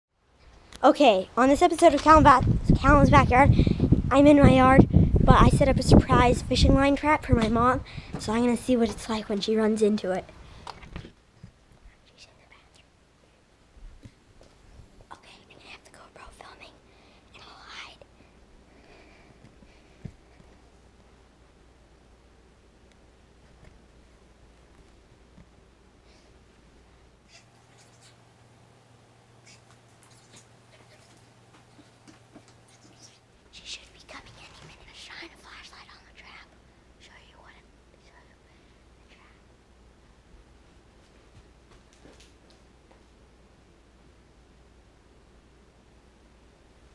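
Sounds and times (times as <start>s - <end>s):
steady low hum: 0.3s - 46.9s
boy whispering: 11.8s - 12.9s, 15.1s - 18.1s, 27.3s - 28.2s, 29.4s - 39.5s.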